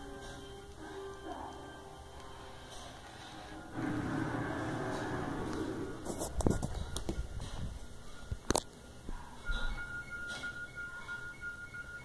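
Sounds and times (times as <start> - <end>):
drawn-out rough noise: 3.6 - 6.4.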